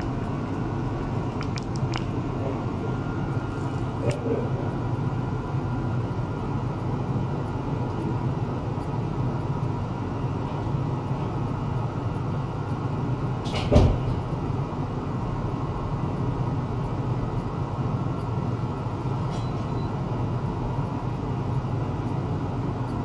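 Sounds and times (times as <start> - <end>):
equipment low hum: 0.0 - 23.0.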